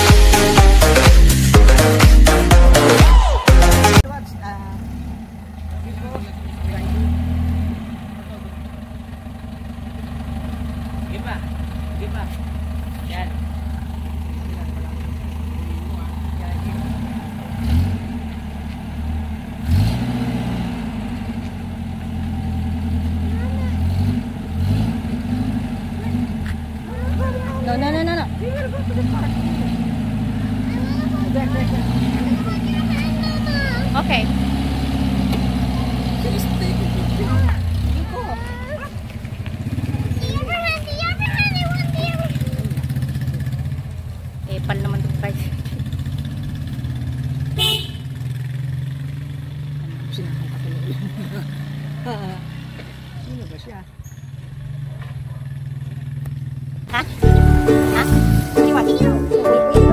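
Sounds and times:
jeep engine running: 0:00.0 - 0:59.9
voices: 0:04.0 - 0:17.7, 0:23.1 - 0:46.2, 0:49.8 - 0:56.3, 0:56.9 - 0:59.9.

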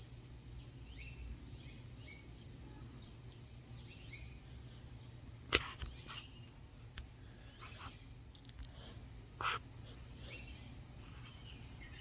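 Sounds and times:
small birds chirping: 0:00.0 - 0:12.0
steady low hum: 0:00.0 - 0:12.0.

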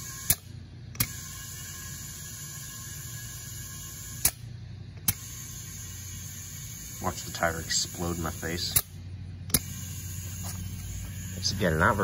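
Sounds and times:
low hum: 0:00.0 - 0:12.0
tire inflator clicking: 0:00.0 - 0:12.0.

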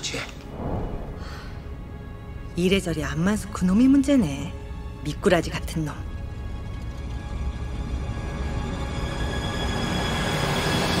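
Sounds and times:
tense background music: 0:00.0 - 0:11.0
low rumble: 0:00.4 - 0:02.7.

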